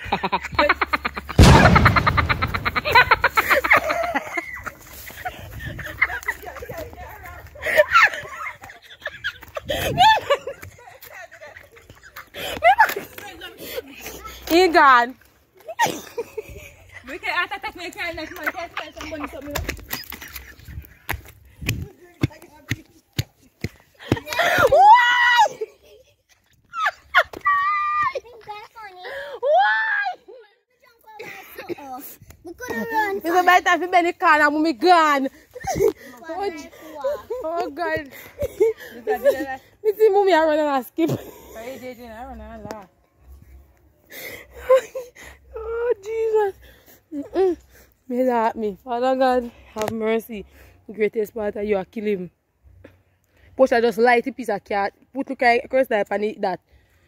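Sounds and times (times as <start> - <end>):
person laughing hard: 0.0 - 4.6
woman screaming in fright: 24.4 - 25.6, 29.4 - 30.3.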